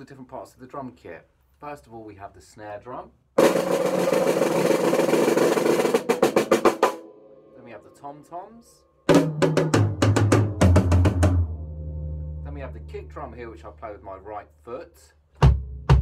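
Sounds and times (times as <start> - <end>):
snare drum roll and strokes: 3.4 - 7.0
deep ringing drum note: 9.1 - 13.4.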